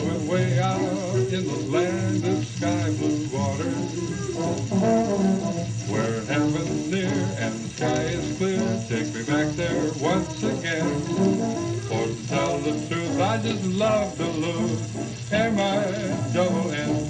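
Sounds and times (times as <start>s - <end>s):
sung verses: 0.0s - 17.0s
brass band music: 4.4s - 5.7s.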